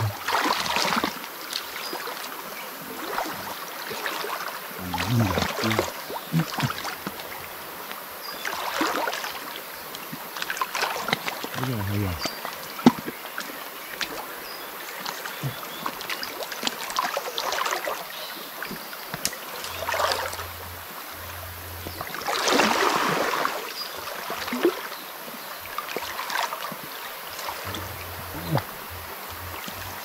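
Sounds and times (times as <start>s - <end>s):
water sloshing and splashing: 0.0s - 25.0s, 25.6s - 30.0s.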